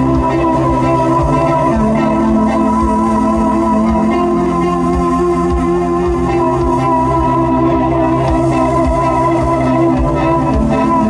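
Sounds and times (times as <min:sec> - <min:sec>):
electric guitar: 0:00.0 - 0:11.0
synthesizer chords: 0:00.0 - 0:11.0.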